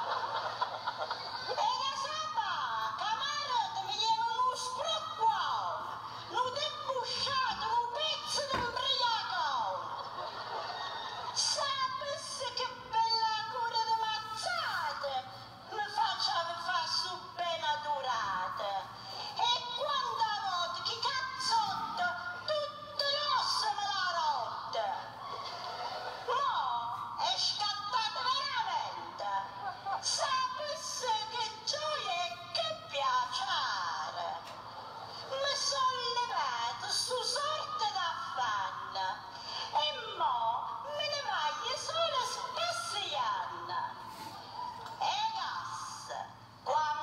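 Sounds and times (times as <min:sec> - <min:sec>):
woman reciting in sing-song voice: 0:01.5 - 0:09.8, 0:11.4 - 0:25.2, 0:26.3 - 0:34.5, 0:35.3 - 0:44.1.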